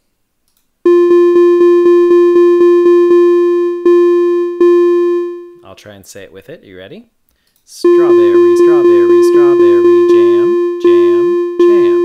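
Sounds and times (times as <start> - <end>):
synthesized repeated note rhythm: 0.9 - 5.6, 7.8 - 12.0.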